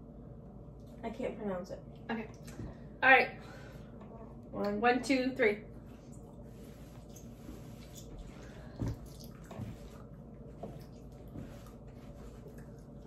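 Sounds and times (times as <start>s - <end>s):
low room hum: 0.0s - 13.0s.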